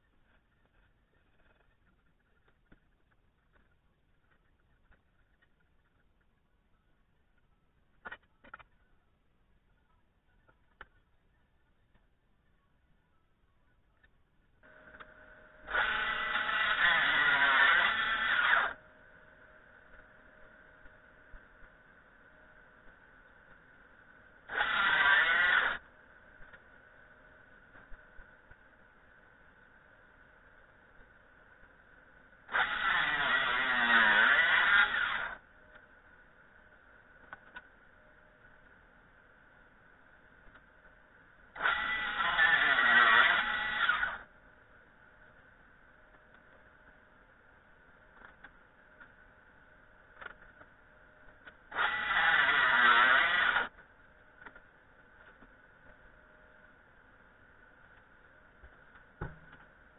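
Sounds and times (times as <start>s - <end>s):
table saw cutting wood: 15.7s - 18.8s, 24.5s - 25.8s, 32.5s - 35.4s, 41.6s - 44.2s, 51.7s - 53.7s.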